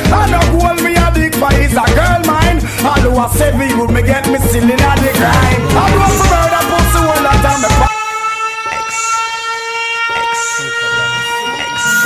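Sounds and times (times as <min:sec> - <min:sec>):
sustained synth chord: 0:03.2 - 0:08.2.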